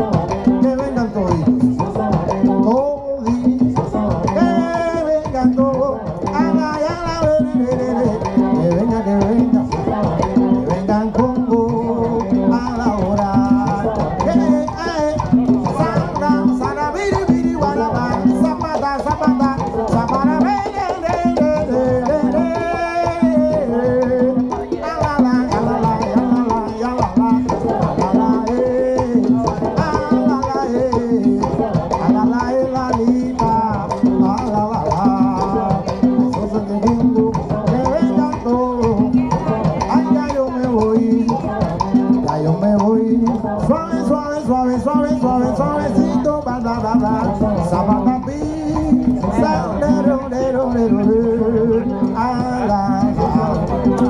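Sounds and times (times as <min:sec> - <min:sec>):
conga drums: 0:00.0 - 0:54.0
hand percussion: 0:00.0 - 0:54.0
people singing: 0:00.0 - 0:54.0.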